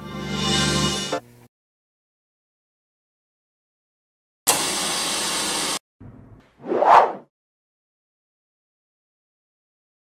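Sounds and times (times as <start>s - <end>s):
short whoosh: 6.6s - 7.3s.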